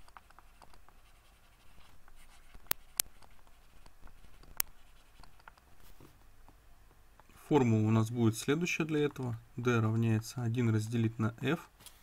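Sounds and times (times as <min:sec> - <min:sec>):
stylus scratching on drawing tablet: 0:00.0 - 0:06.2
sharp clicks: 0:02.6 - 0:05.7.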